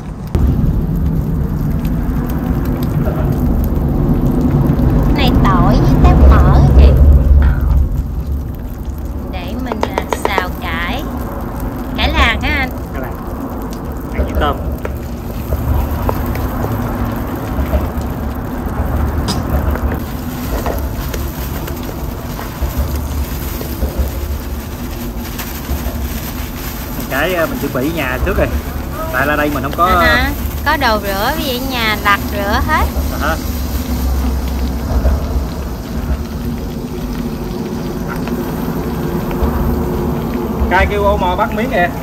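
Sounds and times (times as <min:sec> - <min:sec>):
garlic sizzling in a wok: 0:00.0 - 0:42.0
low rumble: 0:00.0 - 0:42.0
wooden spatula stirring: 0:19.6 - 0:31.2.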